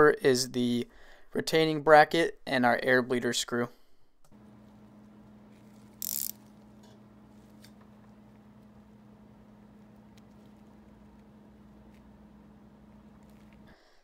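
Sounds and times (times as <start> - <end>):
steady low hum: 4.3 - 14.0
ratchet wrench clicking: 5.9 - 6.5.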